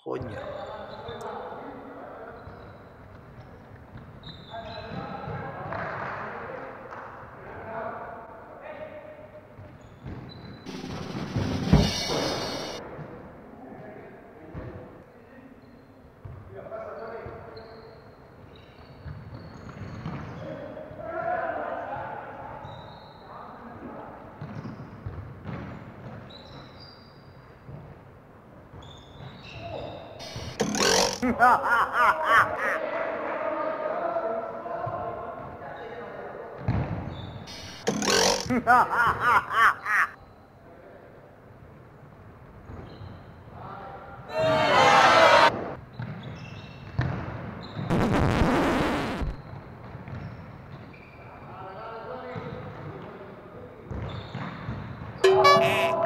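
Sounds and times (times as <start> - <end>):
loud thump: 10.7 - 12.8
football kicked and bouncing on floor: 24.4 - 26.3, 36.6 - 37.1, 46.9 - 47.9
players' voices calling: 30.2 - 32.9, 37.5 - 40.2, 55.2 - 56.0.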